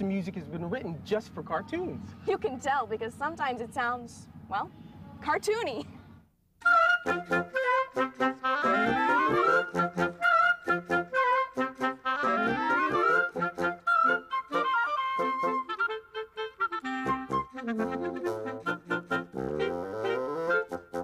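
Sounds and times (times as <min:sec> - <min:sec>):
woodwind ensemble playing: 0:06.6 - 0:21.0.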